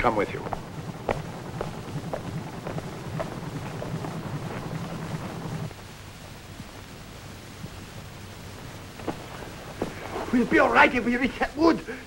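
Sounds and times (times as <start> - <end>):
footsteps: 0.0 - 5.7, 9.0 - 10.6
steady low hum: 0.0 - 12.0.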